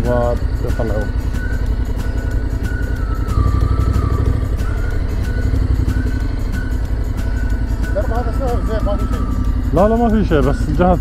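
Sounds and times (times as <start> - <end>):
faint background music: 0.0 - 11.0
motorcycle engine idling: 0.0 - 11.0.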